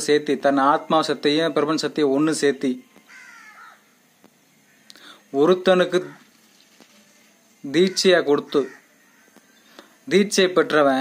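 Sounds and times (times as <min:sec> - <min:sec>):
faint bird call: 0:03.1 - 0:03.8.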